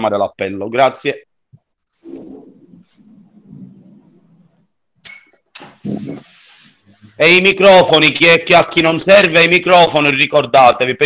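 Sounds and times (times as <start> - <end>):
low murmur on a video call: 0.0 - 11.0.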